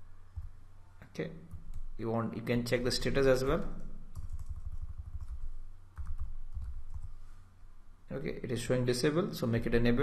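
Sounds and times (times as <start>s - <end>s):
computer keyboard typing: 4.1s - 7.1s.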